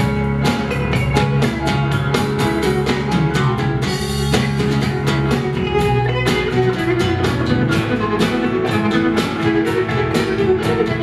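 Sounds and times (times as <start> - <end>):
drum kit beat: 0.0 - 11.0
electric and acoustic guitars: 0.0 - 11.0
electric bass: 0.0 - 11.0
keyboard: 0.0 - 11.0.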